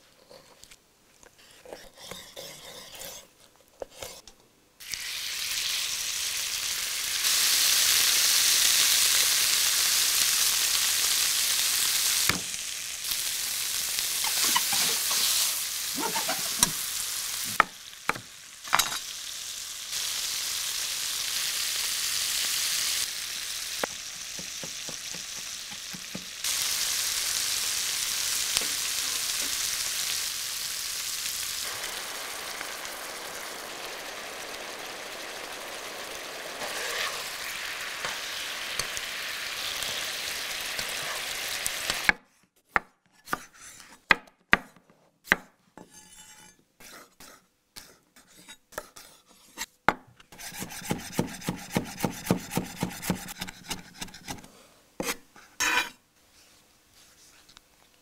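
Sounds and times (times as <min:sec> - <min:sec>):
chicken sizzling in a pan: 0:04.8 - 0:42.2
knife chopping on cutting board: 0:50.4 - 0:54.4.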